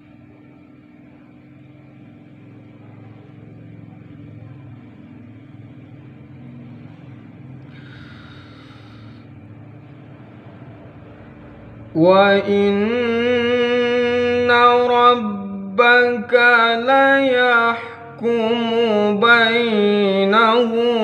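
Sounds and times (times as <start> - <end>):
constant hum: 0.0 - 21.0.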